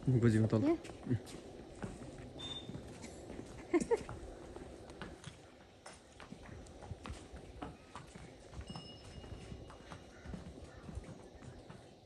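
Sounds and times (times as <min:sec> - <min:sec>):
hooves clip-clopping on stone: 0:00.0 - 0:12.0.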